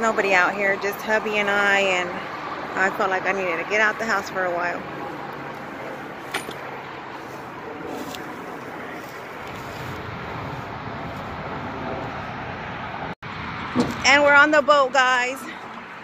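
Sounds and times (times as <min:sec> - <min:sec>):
distant traffic: 0:00.0 - 0:16.0
wind: 0:00.0 - 0:16.0.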